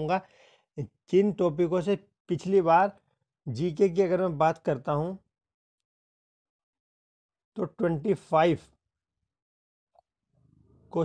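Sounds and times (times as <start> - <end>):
man speaking: 0.8 - 2.9, 3.5 - 5.2, 7.6 - 8.7.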